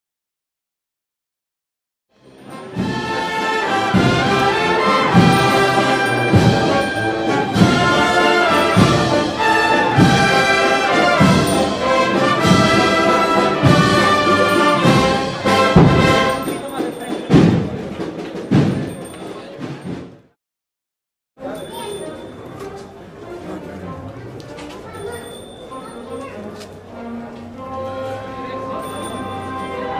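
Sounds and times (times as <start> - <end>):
brass band playing a march: 2.2 - 16.8, 26.9 - 29.9.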